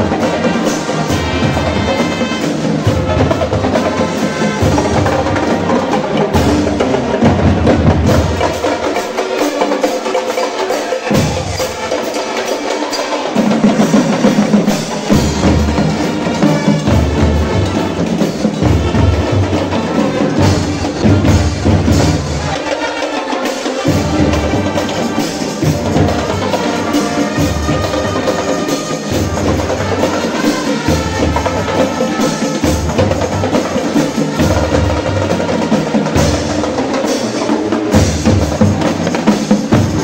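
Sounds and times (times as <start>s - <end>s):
marching bass drums: 0.0s - 9.0s, 13.4s - 22.6s, 23.8s - 40.0s
marching band playing: 0.0s - 40.0s.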